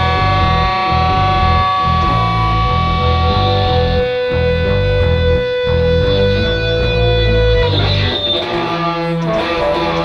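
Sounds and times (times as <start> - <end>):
bass line pulsing: 0.0 - 10.0
guitar long notes: 0.0 - 10.0.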